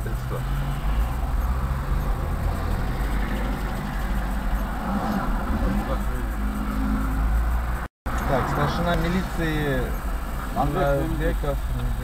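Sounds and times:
car engine idling: 0.0s - 12.0s
traffic passing: 0.0s - 12.0s.

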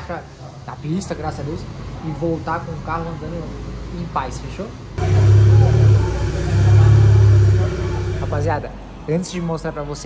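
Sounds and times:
car exhaust drone: 5.0s - 8.7s.

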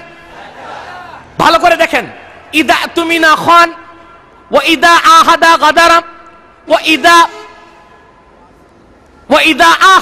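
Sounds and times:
low background noise: 0.0s - 10.0s
man shouting over loudspeaker: 1.0s - 7.7s, 9.3s - 10.0s.

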